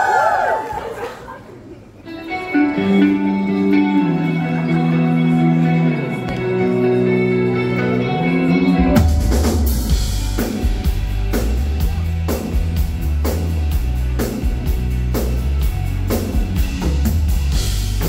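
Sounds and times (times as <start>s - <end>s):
live rock band playing: 2.1s - 18.0s
drum kit steady beat: 8.8s - 18.0s.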